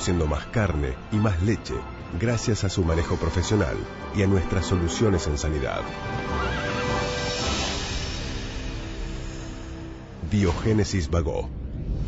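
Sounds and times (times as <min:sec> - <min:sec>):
background music: 0:00.0 - 0:12.0
horse whinnying: 0:06.1 - 0:07.8.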